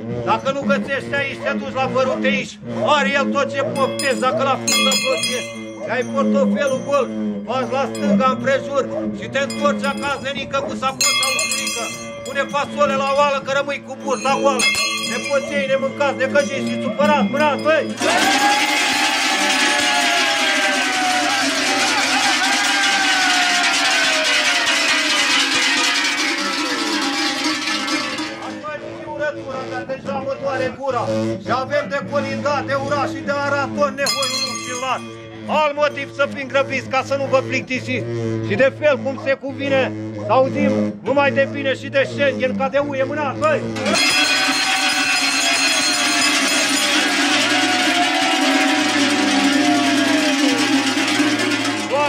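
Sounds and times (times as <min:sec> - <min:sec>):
cowbells clanging: 0:00.0 - 0:52.0
friction drum drone: 0:04.7 - 0:38.7, 0:42.8 - 0:52.0
long falling shout: 0:18.0 - 0:27.6, 0:43.8 - 0:52.0
low pulsing drone: 0:24.5 - 0:43.9.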